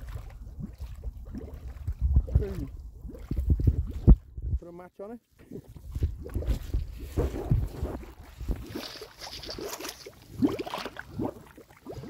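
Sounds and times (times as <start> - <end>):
gas bubbling through mud: 0.0 - 4.5, 5.4 - 12.0.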